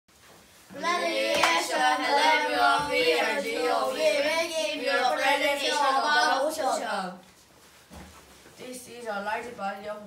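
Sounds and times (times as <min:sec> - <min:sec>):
boys singing together: 0:00.7 - 0:07.1
sharp hand claps: 0:01.3 - 0:01.7.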